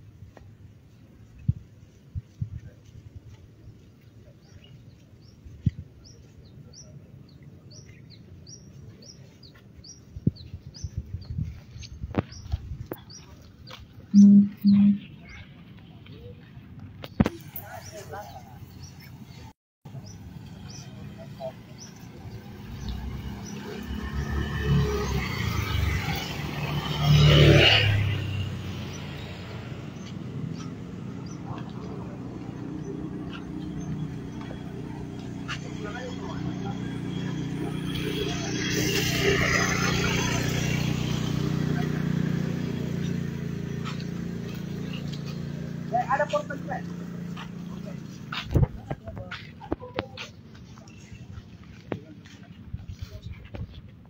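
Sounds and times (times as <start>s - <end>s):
vehicle passing by: 17.3s - 52.1s.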